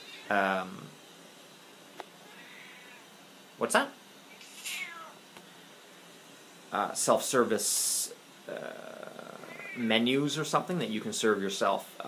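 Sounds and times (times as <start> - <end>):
cat meowing: 2.3 - 3.1, 4.7 - 5.2, 9.4 - 9.8.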